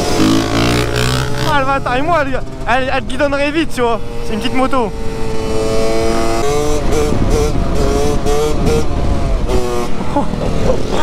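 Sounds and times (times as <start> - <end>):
two-stroke engine revving: 0.0 - 11.0
wind noise on microphone: 5.1 - 11.0.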